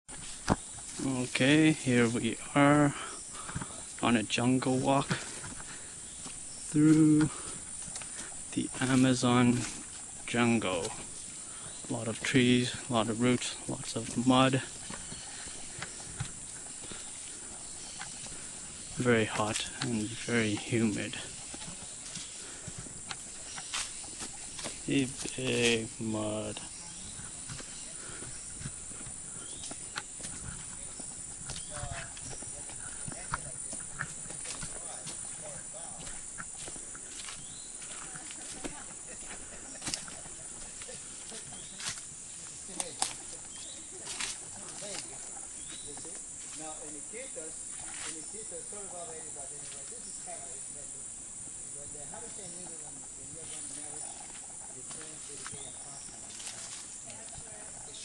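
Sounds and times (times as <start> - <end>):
footsteps on muddy leafy trail: 0.1 - 58.0
insects hissing: 0.1 - 58.0
twigs clicking and snapping: 42.7 - 43.3.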